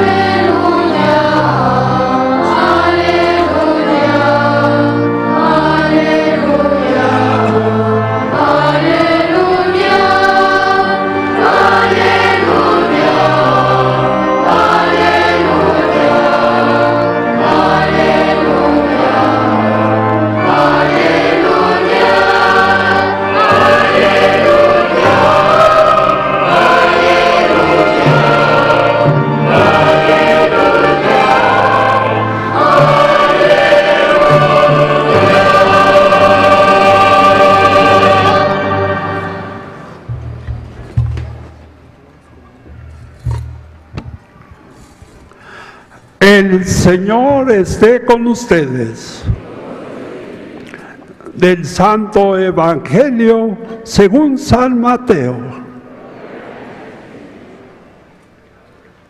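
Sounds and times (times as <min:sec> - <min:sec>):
church choir singing: 0:00.0 - 0:42.0, 0:42.6 - 0:59.0.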